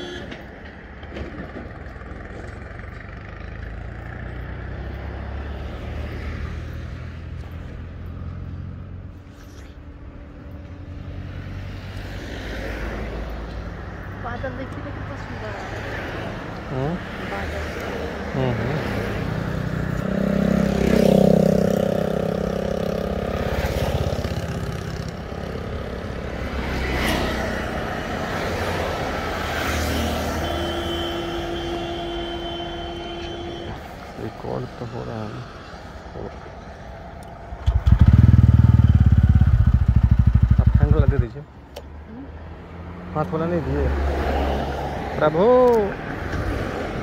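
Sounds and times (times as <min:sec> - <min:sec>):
cars passing: 0:00.0 - 0:47.0
loud motorcycle engine running: 0:37.6 - 0:41.3.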